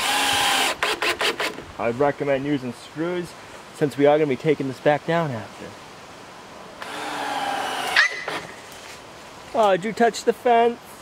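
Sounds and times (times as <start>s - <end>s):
dog yelping: 7.9s - 8.4s.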